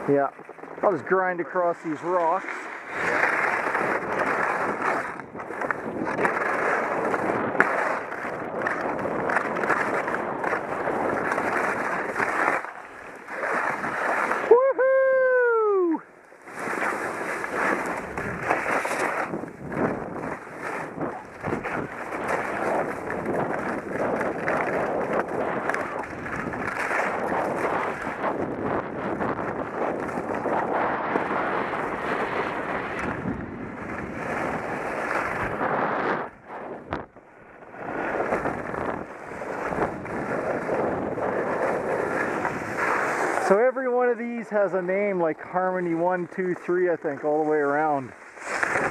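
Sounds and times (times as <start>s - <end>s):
skis scraping over snow: 0.0s - 14.6s, 15.7s - 48.9s
wind noise on microphone: 0.0s - 48.9s.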